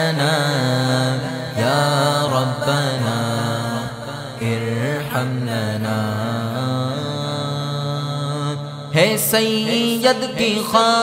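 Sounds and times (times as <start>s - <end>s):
men singing wordless melody: 0.0s - 11.0s.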